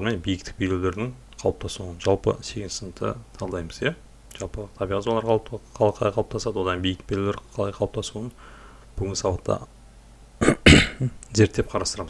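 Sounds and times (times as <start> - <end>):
person speaking: 0.0 - 8.4, 10.4 - 12.0
person clearing throat: 10.4 - 11.2.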